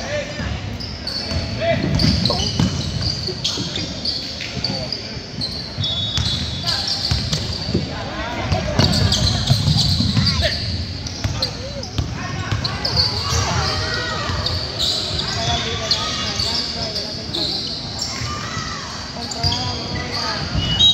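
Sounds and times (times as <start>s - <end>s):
sneakers squeaking: 0.0s - 20.9s
spectators talking and calling out: 0.0s - 20.9s
basketball bouncing: 1.3s - 3.2s, 8.5s - 10.4s.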